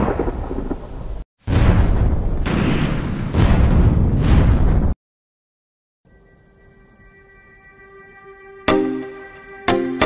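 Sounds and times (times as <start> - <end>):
thunder-like rumble: 0.0 - 2.5.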